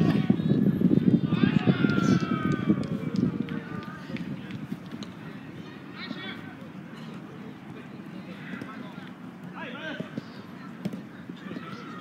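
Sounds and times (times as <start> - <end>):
players running on artificial turf: 0.0 - 12.0.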